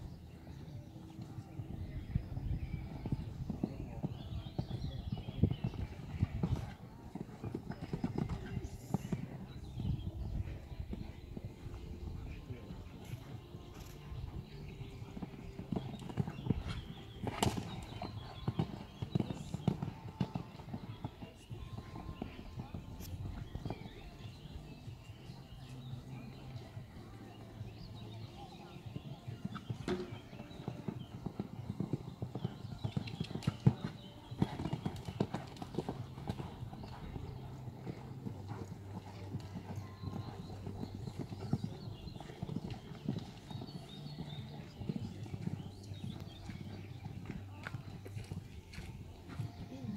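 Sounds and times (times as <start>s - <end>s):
hoofbeats on sand: 13.0s - 24.9s, 27.7s - 49.9s.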